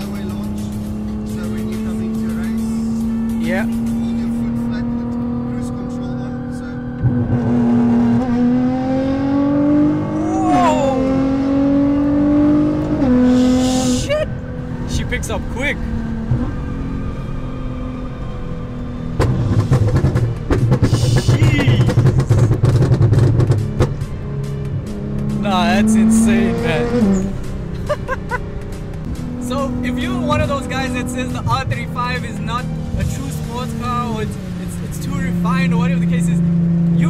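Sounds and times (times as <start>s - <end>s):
car engine accelerating hard: 0.0s - 37.0s
exhaust cracks and bangs: 19.2s - 25.5s.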